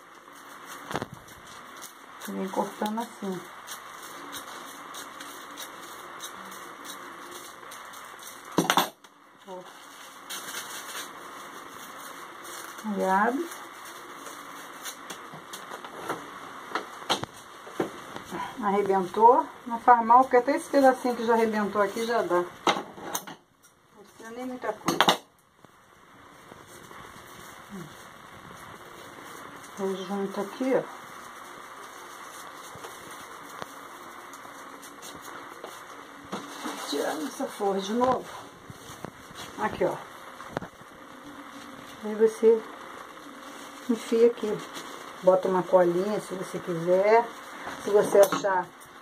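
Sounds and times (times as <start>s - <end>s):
paper rustling and crumpling: 0.0s - 19.2s, 26.4s - 49.0s.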